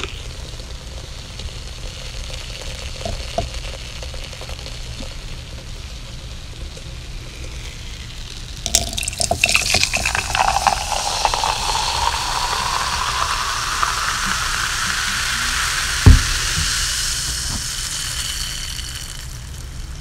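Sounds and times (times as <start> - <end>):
carbonated soda fizzing: 0.0 - 20.0
low thump: 16.0 - 16.8.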